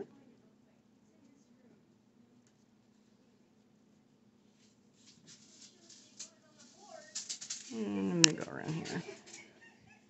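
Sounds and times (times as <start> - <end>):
yarn rustling: 4.4 - 9.5.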